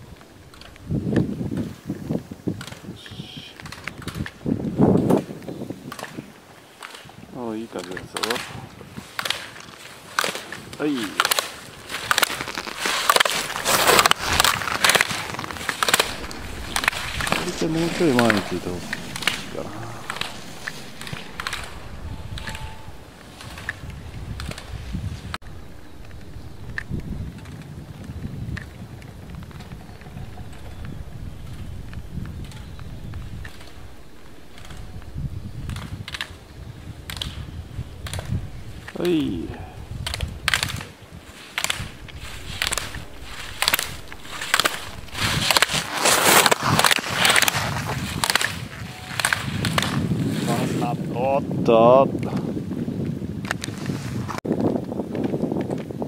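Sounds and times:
wind rumble on microphone: 0.0 - 56.0
ski edges scraping on hard snow: 11.1 - 27.6, 37.1 - 48.6
man speaking: 16.0 - 23.1, 38.0 - 40.0.

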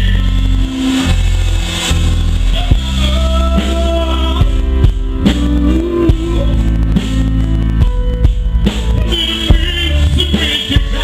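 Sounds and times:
drum kit strokes: 0.0 - 11.0
live rock band: 0.0 - 11.0.

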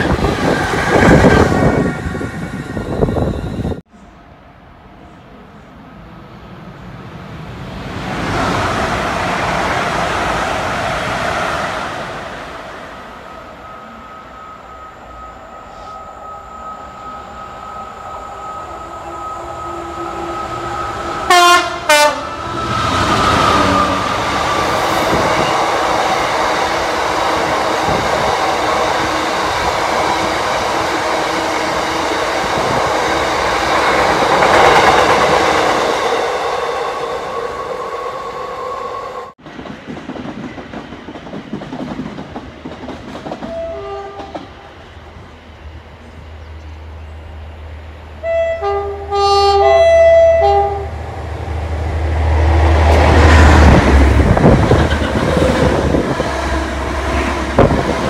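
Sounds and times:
train rumbling and clattering past: 0.0 - 58.0
train horn blasts: 17.2 - 24.1, 43.5 - 44.5, 48.2 - 51.0.

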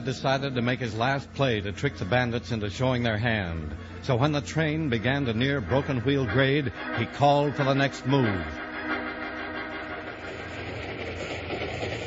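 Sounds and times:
steam train running: 0.0 - 12.0.

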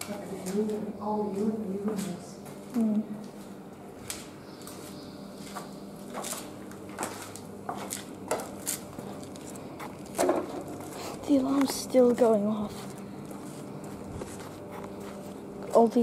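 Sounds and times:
footsteps crunching over rubble: 0.0 - 16.0.

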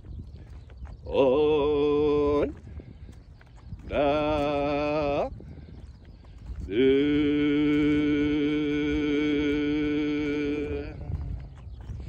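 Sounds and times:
person singing long notes: 6.7 - 11.4.

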